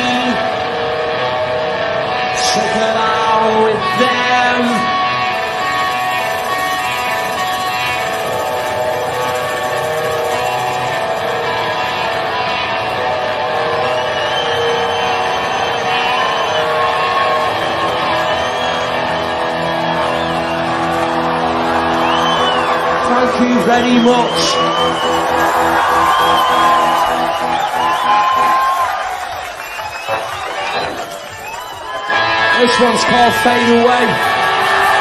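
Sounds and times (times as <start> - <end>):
live rock band music: 0.0 - 35.0.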